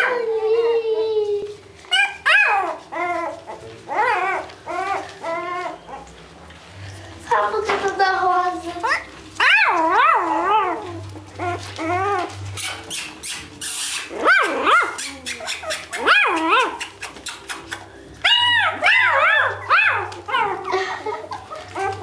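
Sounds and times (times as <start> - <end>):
puppies whining and yelping: 0.0 - 6.4, 8.8 - 22.0.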